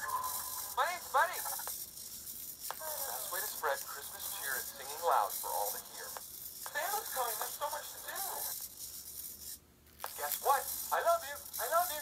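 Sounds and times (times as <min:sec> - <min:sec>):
recorded voice from small speaker: 0:00.0 - 0:01.7, 0:02.7 - 0:08.6, 0:10.1 - 0:12.0.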